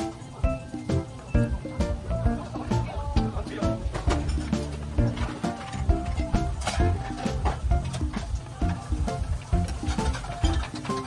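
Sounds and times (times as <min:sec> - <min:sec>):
melodic background music with beat: 0:00.0 - 0:11.0.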